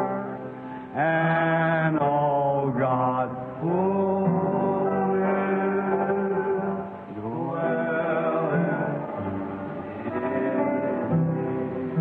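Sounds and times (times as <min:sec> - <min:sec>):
slow hymn singing: 0:00.0 - 0:12.0.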